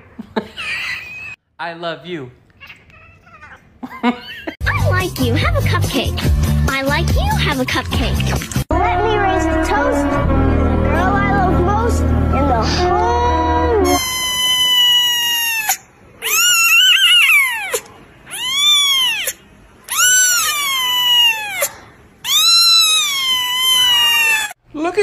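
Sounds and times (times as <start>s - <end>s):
kitten meowing: 13.9s - 24.6s.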